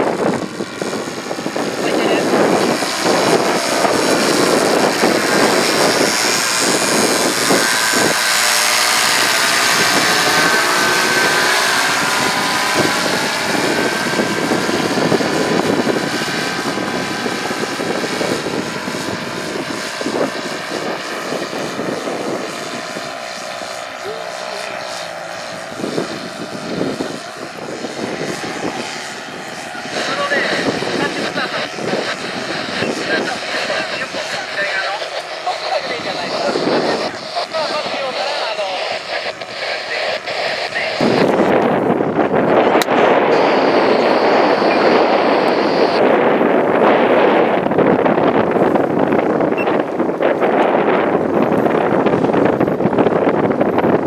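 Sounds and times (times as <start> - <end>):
paramotor engine droning overhead: 0.0 - 54.0.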